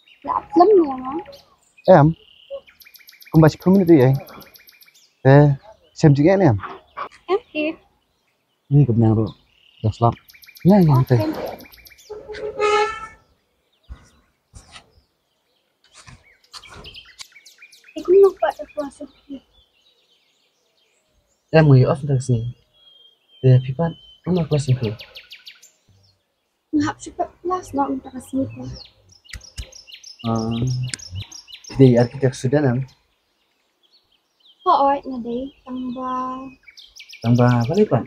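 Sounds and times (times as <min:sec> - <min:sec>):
birds chirping: 0:00.0 - 0:38.0.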